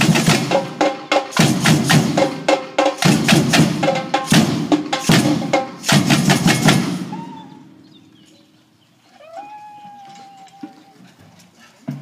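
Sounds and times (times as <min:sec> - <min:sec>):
samba drums playing: 0:00.0 - 0:07.4.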